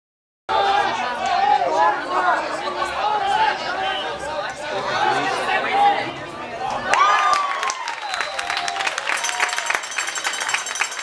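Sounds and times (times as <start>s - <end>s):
crowd chatter: 0.5s - 11.0s.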